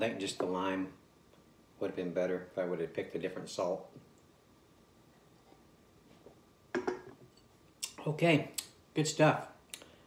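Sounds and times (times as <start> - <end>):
glass mug knocking on wood: 6.8 - 7.2.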